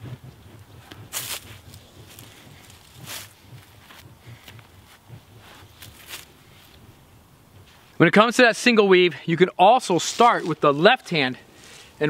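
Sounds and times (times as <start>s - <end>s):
sticks swishing through air: 0.2s - 6.8s
feet rustling dry leaves: 1.1s - 4.6s, 5.4s - 6.8s, 9.9s - 12.0s.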